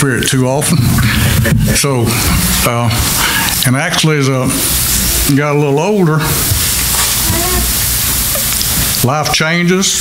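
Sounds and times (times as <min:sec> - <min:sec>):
steady hiss: 0:00.0 - 0:10.0
faint voice: 0:07.2 - 0:07.8.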